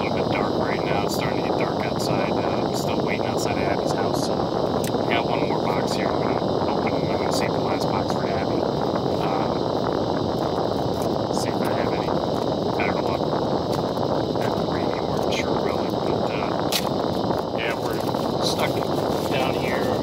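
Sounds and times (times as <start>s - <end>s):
rushing noise inside vehicle cabin: 0.0s - 20.0s.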